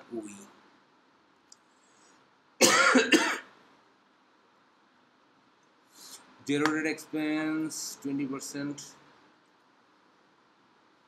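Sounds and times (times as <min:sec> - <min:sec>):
man coughing: 0:02.6 - 0:03.5.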